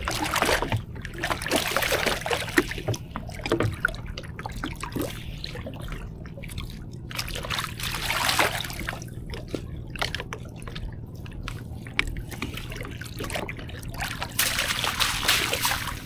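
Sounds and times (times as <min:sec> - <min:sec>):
small water splashes: 0:00.0 - 0:16.0
water trickling and dripping: 0:00.0 - 0:16.0.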